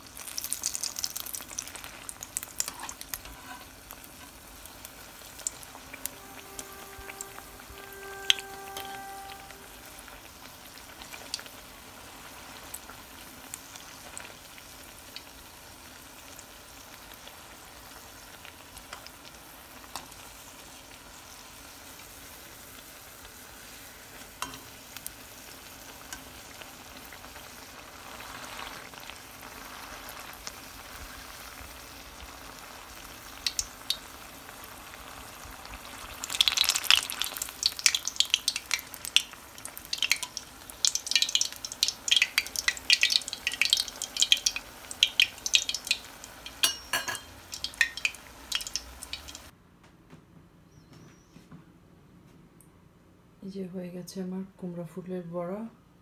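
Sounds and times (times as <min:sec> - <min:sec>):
oil sizzling and spattering: 0:00.0 - 0:49.5.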